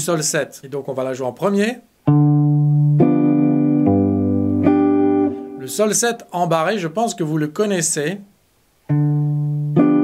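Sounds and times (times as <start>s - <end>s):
jazz guitar playing: 2.0s - 6.0s, 8.9s - 10.0s.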